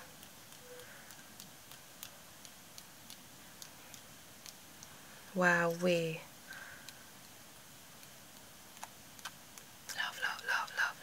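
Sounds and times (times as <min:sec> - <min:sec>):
paintbrush tapping ticks: 0:00.0 - 0:05.0, 0:06.6 - 0:10.9.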